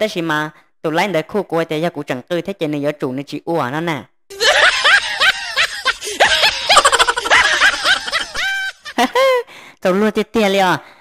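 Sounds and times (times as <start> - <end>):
woman laughing high-pitched: 4.3 - 9.5.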